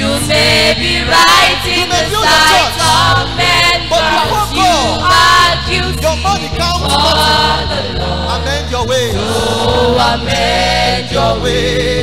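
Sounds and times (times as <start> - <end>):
choir singing gospel: 0.0 - 12.0
low held accompaniment notes: 0.0 - 12.0.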